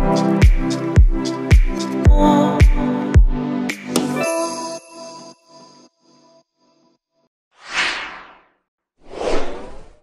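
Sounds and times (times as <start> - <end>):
whoosh sound effects: 7.6 - 8.5.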